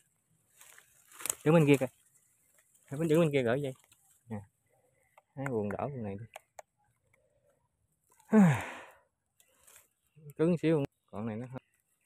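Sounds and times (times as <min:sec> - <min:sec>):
person sighing: 0:08.3 - 0:09.0.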